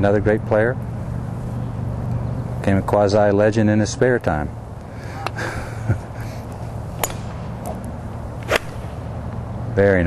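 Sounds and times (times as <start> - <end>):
golf iron striking ball: 6.9 - 9.3.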